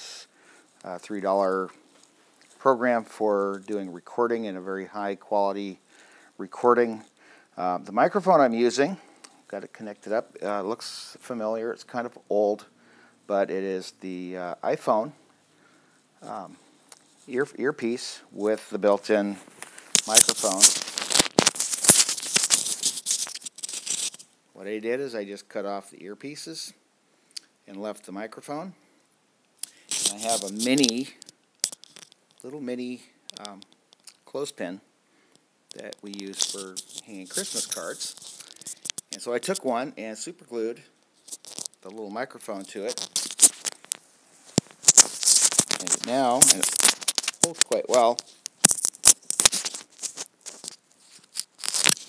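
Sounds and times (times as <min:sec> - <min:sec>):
microphone handling crackles: 0:19.2 - 0:24.2, 0:35.7 - 0:39.6, 0:42.6 - 0:52.0.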